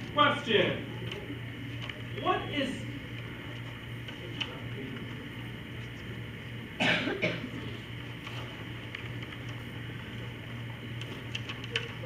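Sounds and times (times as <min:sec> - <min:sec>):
low room hum: 0:00.0 - 0:12.0
person coughing: 0:06.8 - 0:07.6.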